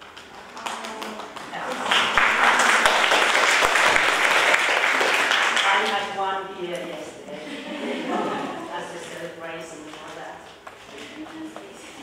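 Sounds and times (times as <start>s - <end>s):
audience applauding: 0.0s - 6.0s.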